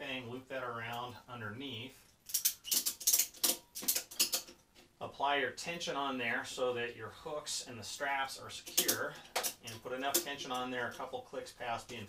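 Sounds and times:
ratchet strap pawl clicking: 2.2s - 4.5s.

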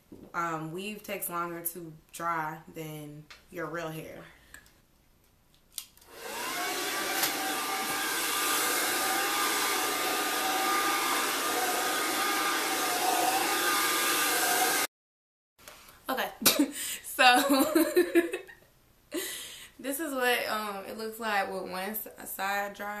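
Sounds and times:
hair dryer whining: 6.0s - 14.9s
hair dryer switch click: 7.1s - 7.5s.

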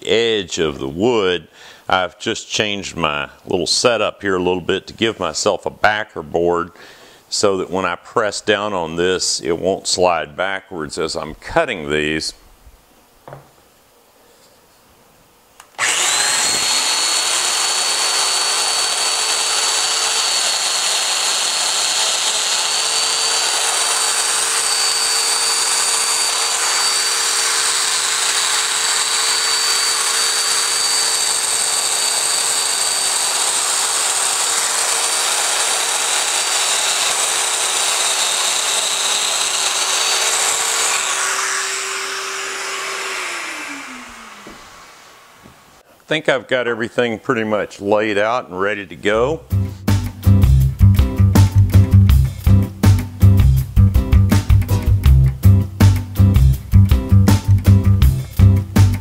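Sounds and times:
power joiner motor whining: 15.8s - 45.5s.

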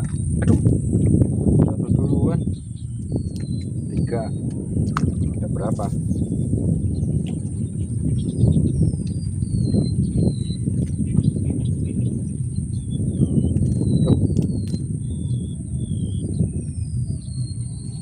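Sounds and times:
high-pitched hum: 0.0s - 18.0s
wind buffeting microphone: 0.0s - 18.0s.

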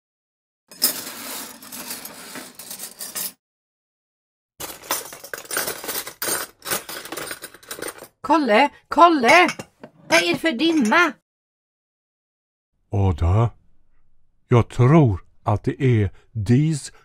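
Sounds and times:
dishes and glassware clattering: 4.6s - 8.2s, 9.2s - 11.1s.

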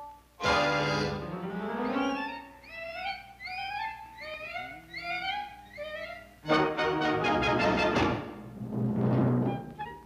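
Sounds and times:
orchestral cartoon music: 0.4s - 2.5s, 6.4s - 8.9s.

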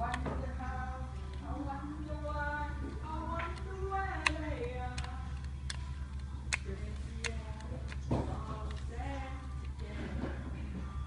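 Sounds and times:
steady low hum: 0.0s - 11.0s
sharp clicks: 3.3s - 8.9s.

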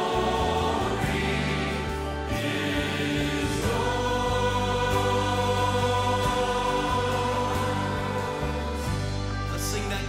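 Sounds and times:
choir singing: 0.0s - 9.3s.

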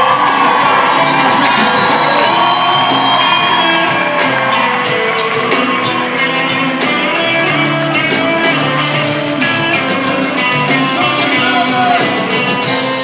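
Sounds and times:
audience whooping and shouting: 0.0s - 13.0s
live rock band playing: 0.0s - 13.0s.

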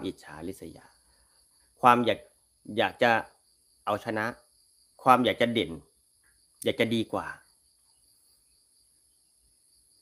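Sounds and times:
man speaking: 0.0s - 0.9s, 1.8s - 5.9s, 6.6s - 7.5s
insects chirring: 0.0s - 10.0s.

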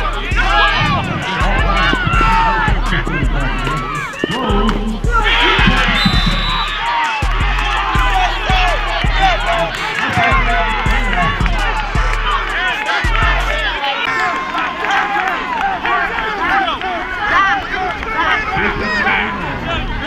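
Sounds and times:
music with pulsing bass: 0.0s - 13.8s
crowd cheering: 0.0s - 20.0s
voices: 0.0s - 20.0s.

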